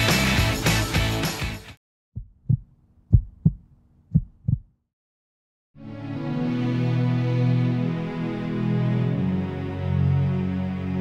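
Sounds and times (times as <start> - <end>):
heartbeat thumps: 2.2 - 4.8.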